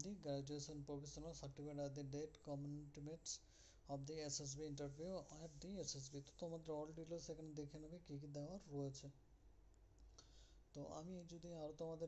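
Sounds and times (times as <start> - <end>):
person speaking: 0.0 - 9.2, 10.7 - 12.0
soft breath: 3.4 - 3.9, 10.1 - 10.7.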